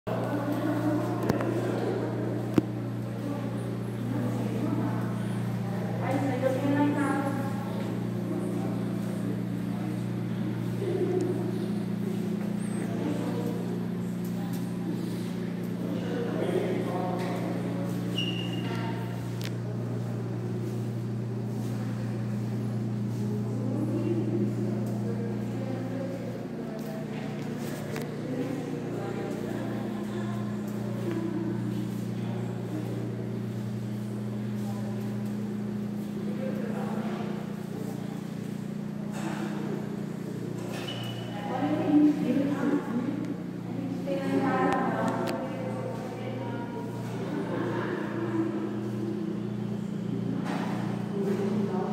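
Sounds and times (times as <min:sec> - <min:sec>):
faint voices talking: 0:00.1 - 0:51.9
steady low hum: 0:00.1 - 0:51.9.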